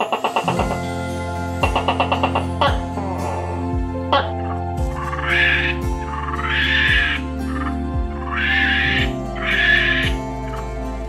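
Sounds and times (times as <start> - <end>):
background music with steady beat: 0.0 - 11.0
monkey giving harsh calls: 5.0 - 10.2.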